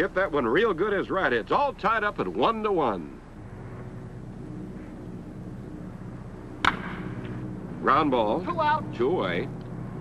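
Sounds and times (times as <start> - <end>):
low film hum: 0.0 - 10.0
wooden bat cracking against ball: 6.6 - 7.4.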